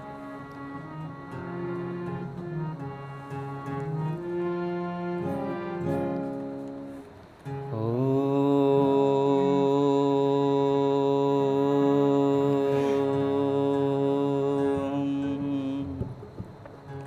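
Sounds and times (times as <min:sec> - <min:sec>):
sustained harmonium: 0:00.0 - 0:15.9
man chanting a held note: 0:07.7 - 0:16.1.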